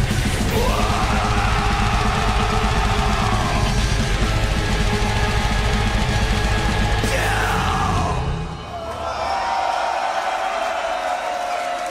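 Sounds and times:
fast drum beat: 0.0 - 8.3
distorted guitars: 0.0 - 8.7.

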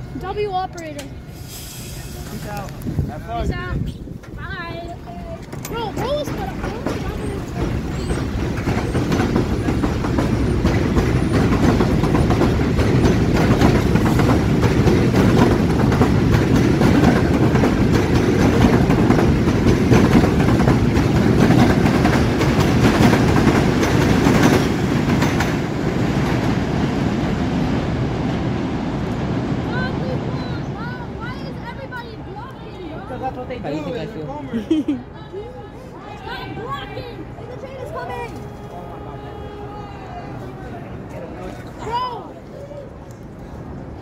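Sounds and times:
train rumbling on elevated track: 0.0 - 44.0
wheels clicking over rail joints: 4.0 - 26.5.

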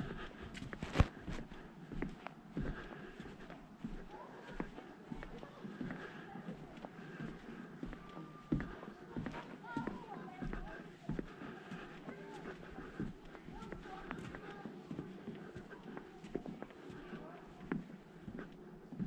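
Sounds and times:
faint voices: 0.0 - 19.0
footsteps on wooden decking: 0.0 - 19.0.

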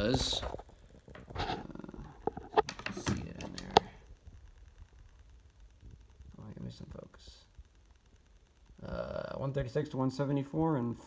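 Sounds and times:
antenna handling clicks and rustles: 2.2 - 4.2.

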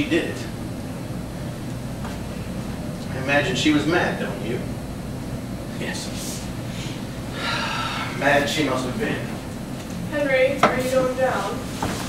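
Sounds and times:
man speaking: 0.0 - 0.6, 3.0 - 4.8, 8.1 - 9.5
short breath: 6.7 - 8.2
man sighing: 6.8 - 8.2.

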